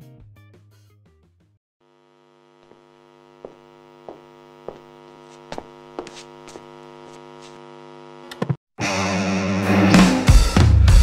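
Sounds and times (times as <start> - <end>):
electrical mains hum: 1.8 - 8.6.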